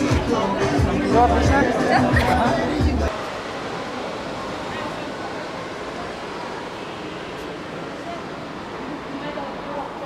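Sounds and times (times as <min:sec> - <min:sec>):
indistinct voices: 0:00.0 - 0:10.0
steady wash of noise: 0:00.0 - 0:10.0.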